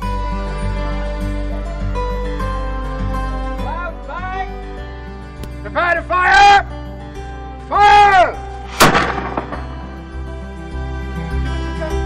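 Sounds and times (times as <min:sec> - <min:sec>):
person shouting a command: 0:05.7 - 0:06.7, 0:07.7 - 0:08.4
cannon blank shot: 0:08.7 - 0:10.0.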